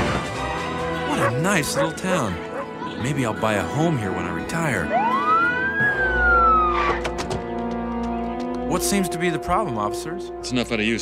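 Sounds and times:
police siren wail: 0:04.4 - 0:07.2.

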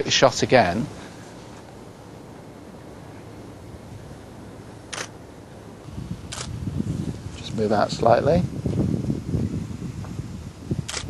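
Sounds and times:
faint low background rumble: 0:00.0 - 0:11.0
camera shutter click: 0:04.9 - 0:05.2, 0:06.3 - 0:06.5.

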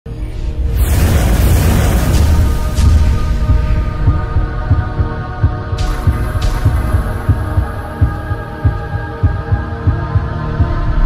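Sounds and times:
whoosh: 0:00.4 - 0:08.7
low bass pulses: 0:00.6 - 0:11.0.

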